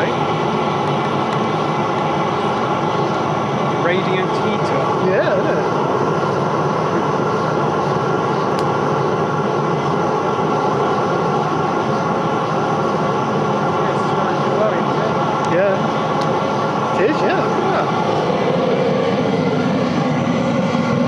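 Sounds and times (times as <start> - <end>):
motor hum: 0.0 - 21.0
oil burner rushing: 0.0 - 21.0.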